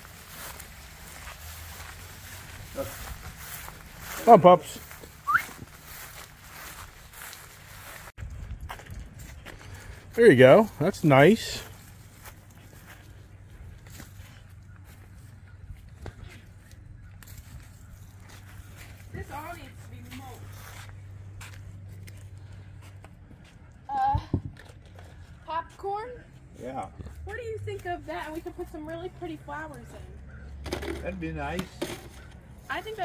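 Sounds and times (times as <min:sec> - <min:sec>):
light clicks and scuffs: 0:13.8 - 0:23.8.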